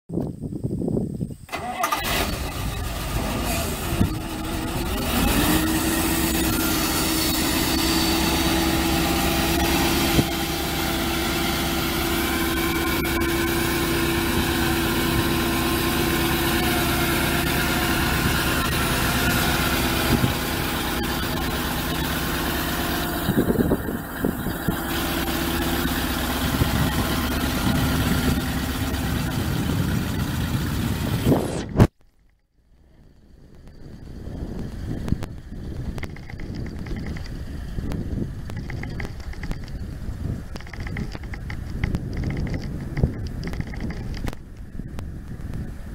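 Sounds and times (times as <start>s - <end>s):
engine knocks: 1.5s - 31.3s, 33.5s - 45.6s
truck engine running: 1.5s - 31.9s, 32.8s - 45.9s.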